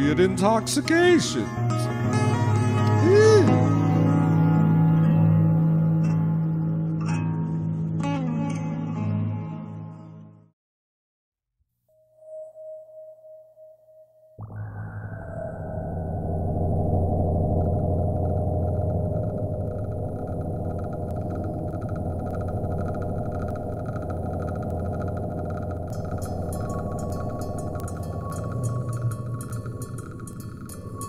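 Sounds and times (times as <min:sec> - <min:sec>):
electronic sci-fi drone: 0:14.4 - 0:31.0
fast high ticking: 0:16.7 - 0:31.0.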